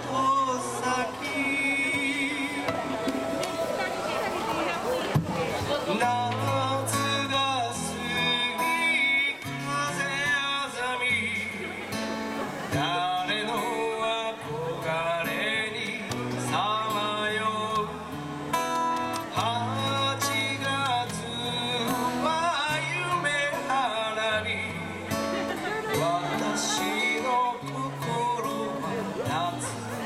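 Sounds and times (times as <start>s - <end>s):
man singing into microphone: 0.0s - 4.1s, 5.8s - 12.0s, 12.7s - 30.0s
guitar: 0.0s - 30.0s.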